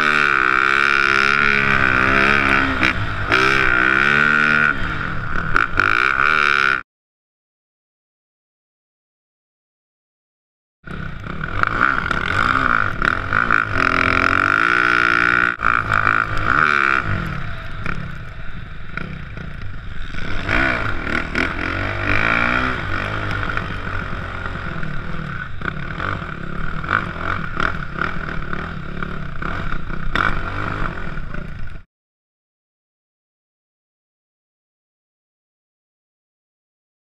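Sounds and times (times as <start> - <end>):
dirt bike engine revving: 0.0 - 6.8, 10.9 - 31.8.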